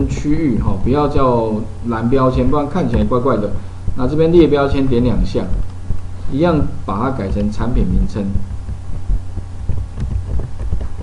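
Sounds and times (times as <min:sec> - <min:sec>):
steady low hum: 0:00.0 - 0:11.0.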